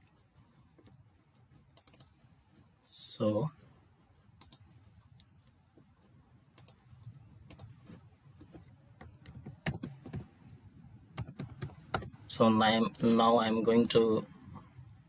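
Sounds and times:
keyboard typing: 0:01.6 - 0:02.2, 0:04.4 - 0:04.8, 0:06.5 - 0:10.3, 0:11.1 - 0:12.1, 0:12.8 - 0:14.1.

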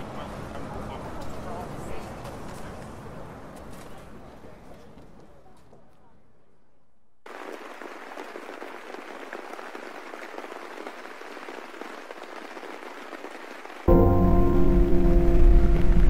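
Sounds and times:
crackly rain hiss: 0:07.3 - 0:13.8.

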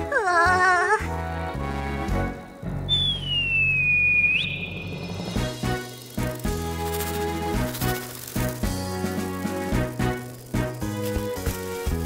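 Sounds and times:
gliding whistle-like cartoon tone: 0:02.9 - 0:05.4.

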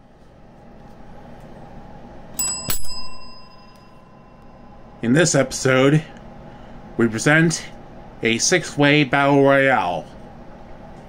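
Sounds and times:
small metal bell ringing: 0:02.4 - 0:04.4.

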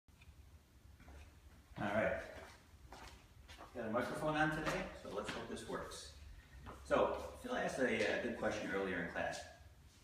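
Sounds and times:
man talking: 0:01.8 - 0:02.4, 0:03.7 - 0:06.2, 0:06.8 - 0:09.6.

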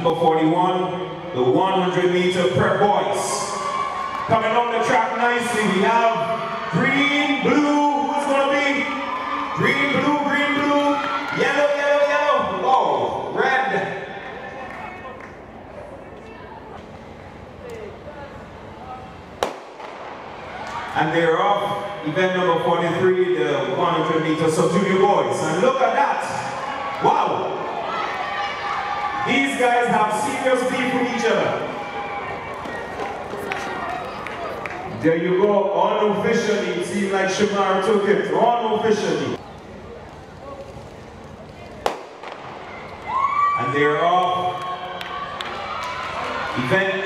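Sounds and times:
starter's pistol shot: 0:19.4 - 0:20.2.

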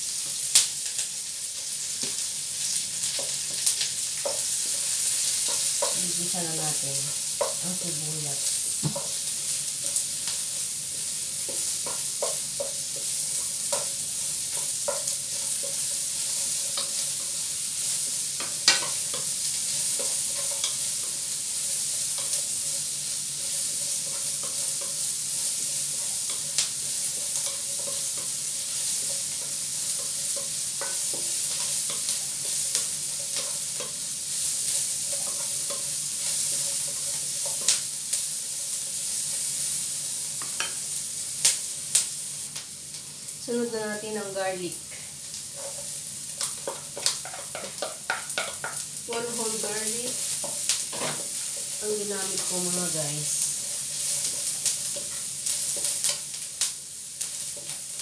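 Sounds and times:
onions sizzling in a wok: 0:00.0 - 0:58.0
spatula scraping a wok: 0:45.3 - 0:56.3
spatula knocking against pan: 0:46.7 - 0:48.8.

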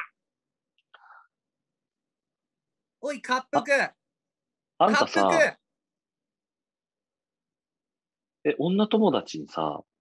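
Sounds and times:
person breathing softly: 0:00.9 - 0:01.4.

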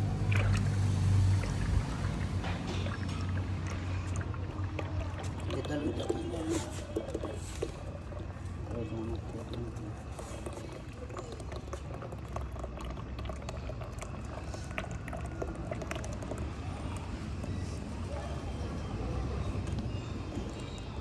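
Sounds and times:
pestle grinding low rumble: 0:00.0 - 0:18.0
oil trickling into pot: 0:00.2 - 0:18.4.

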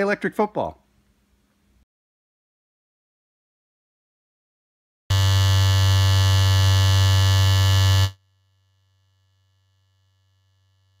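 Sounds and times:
loud electric buzz: 0:05.1 - 0:11.0.

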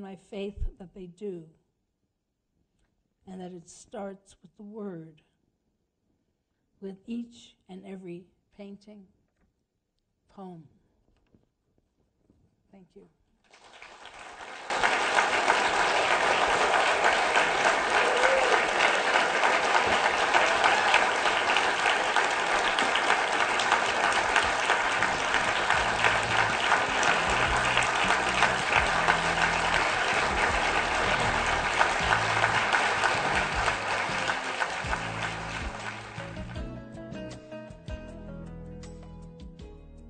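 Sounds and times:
audience applauding: 0:13.5 - 0:36.6
music with low bass notes: 0:25.0 - 0:40.0.

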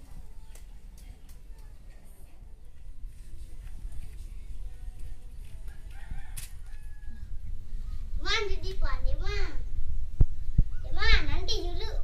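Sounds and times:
steady low rumble: 0:02.8 - 0:12.0
rooster crowing faintly: 0:05.4 - 0:08.1.

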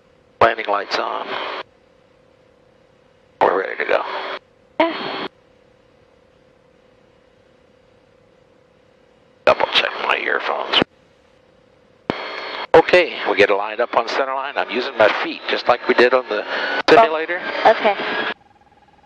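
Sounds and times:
faint steady hum: 0:00.0 - 0:19.0
speech over radio intercom: 0:00.4 - 0:01.4, 0:03.4 - 0:04.4, 0:09.5 - 0:10.9, 0:12.8 - 0:18.2
radio squelch: 0:00.4 - 0:01.6, 0:03.4 - 0:05.3, 0:09.4 - 0:10.9, 0:12.1 - 0:18.4.

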